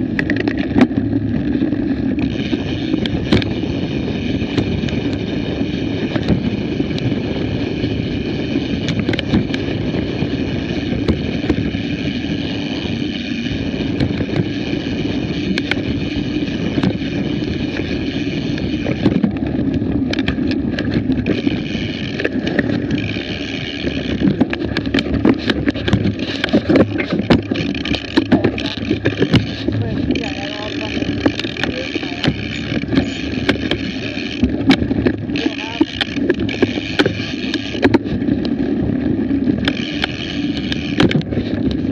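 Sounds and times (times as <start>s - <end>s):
bike rattling clicks and knocks: 0.0s - 41.9s
rumble and rush of bike ride: 0.0s - 41.9s
high steady buzz: 20.1s - 38.0s.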